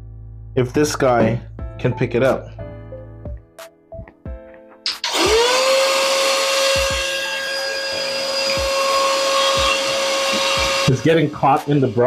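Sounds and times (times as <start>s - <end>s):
vacuum cleaner motor whine: 5.0s - 12.0s.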